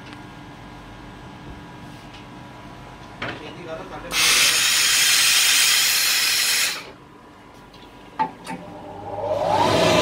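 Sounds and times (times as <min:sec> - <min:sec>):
steam iron hissing: 0:04.1 - 0:06.9.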